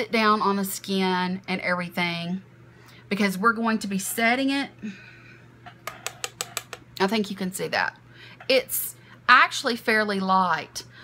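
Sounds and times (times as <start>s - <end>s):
faint steady hum: 0.0s - 11.0s
brush tapping on palette: 5.9s - 6.8s.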